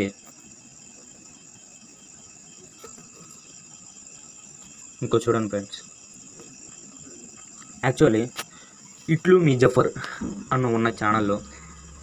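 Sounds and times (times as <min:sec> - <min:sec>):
steady high-pitched buzz: 0:00.0 - 0:12.0.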